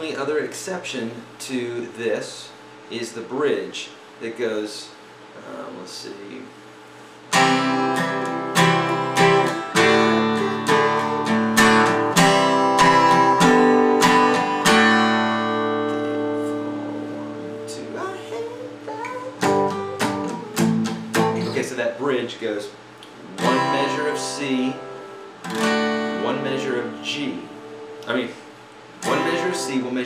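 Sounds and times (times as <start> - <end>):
acoustic guitar strumming: 7.3 - 21.8, 23.3 - 28.4, 29.0 - 30.0.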